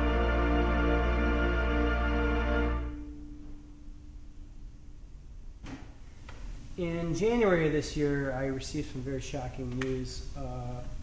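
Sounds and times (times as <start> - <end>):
theatre organ note: 0.0 - 3.6.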